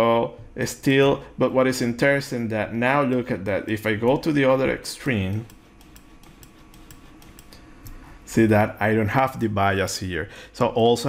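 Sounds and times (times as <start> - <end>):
mouse and keyboard clicks: 5.3 - 8.0.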